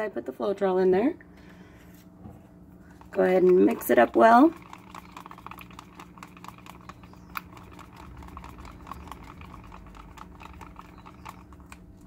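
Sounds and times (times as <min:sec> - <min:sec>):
stick stirring paint in plastic cup: 0:02.8 - 0:12.0.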